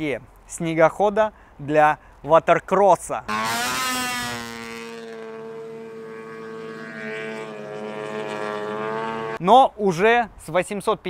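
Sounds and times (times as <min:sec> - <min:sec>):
snowmobile engine at high revs: 0:03.3 - 0:09.4.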